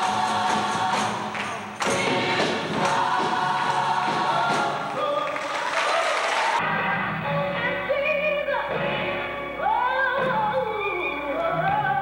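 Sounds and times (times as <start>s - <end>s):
gospel choir singing: 0.0s - 7.4s.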